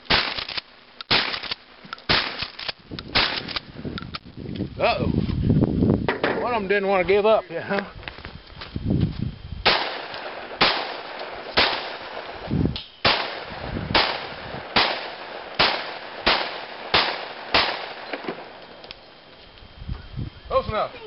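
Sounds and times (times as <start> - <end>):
pistol shots: 0.1 - 3.6, 9.6 - 18.6.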